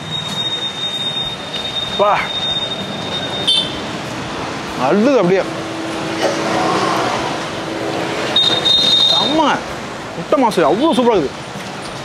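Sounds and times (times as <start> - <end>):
high-pitched tone: 0.0 - 3.8
motor scooter passing: 2.6 - 9.4.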